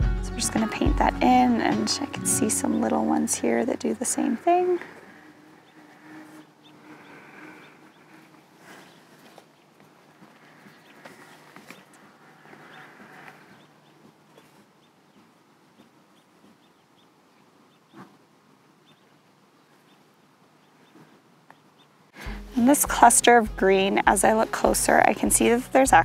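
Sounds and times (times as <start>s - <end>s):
small bird chirping softly: 5.2s - 18.2s, 18.8s - 22.0s.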